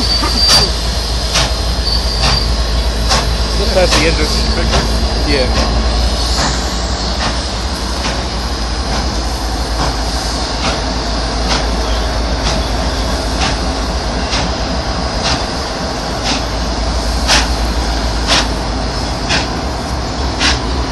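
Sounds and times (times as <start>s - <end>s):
wheels clacking over rail joints: 0.0s - 9.2s
train wheels rumbling on rails: 0.0s - 20.9s.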